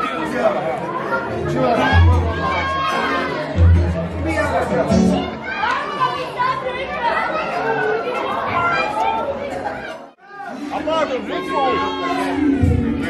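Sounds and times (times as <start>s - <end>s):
people talking over one another: 0.0s - 13.0s.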